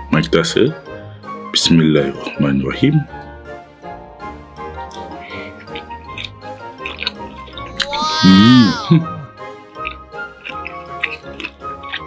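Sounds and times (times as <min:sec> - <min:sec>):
background music: 0:03.3 - 0:12.0
wet chewing: 0:04.9 - 0:08.0, 0:09.8 - 0:12.0.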